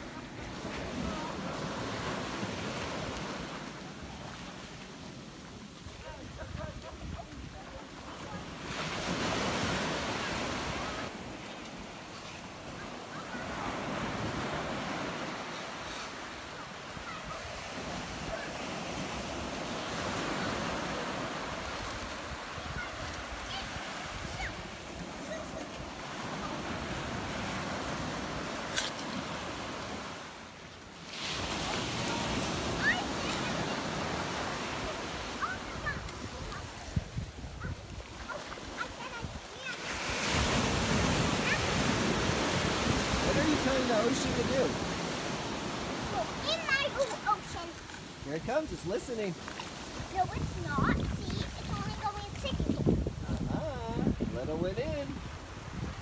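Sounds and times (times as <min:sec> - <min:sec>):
small waves rushing on beach: 0:00.0 - 0:56.0.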